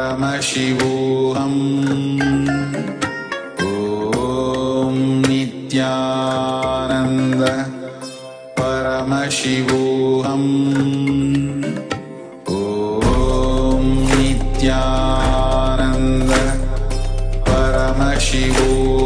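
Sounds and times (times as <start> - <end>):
sung mantra chant: 0.0 - 19.0
steady drone: 12.7 - 19.0.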